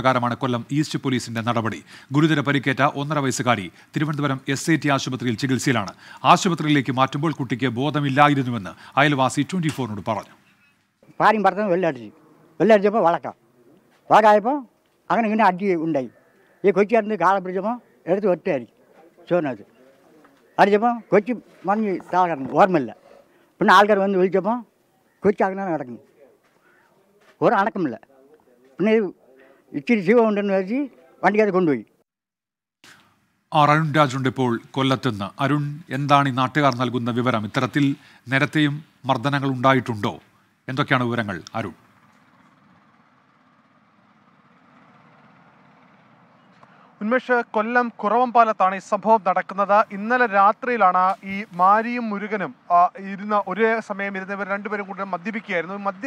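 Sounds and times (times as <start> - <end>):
man speaking: 0.0 - 10.4, 11.1 - 23.0, 23.6 - 26.4, 27.3 - 31.9, 33.5 - 41.8, 47.0 - 56.0.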